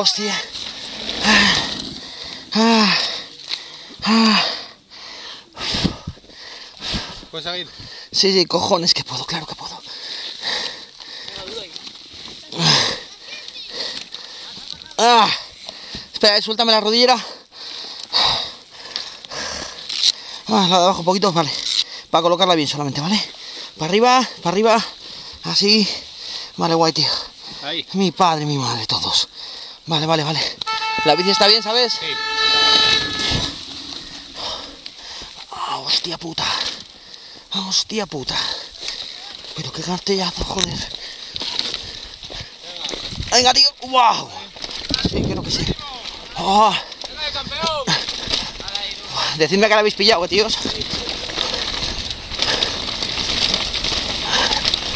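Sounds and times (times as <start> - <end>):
heavy noisy breathing: 0.2 - 8.2, 17.4 - 20.5, 31.0 - 35.6
bike clicks and rattles: 0.5 - 4.4, 38.2 - 43.3, 44.4 - 54.9.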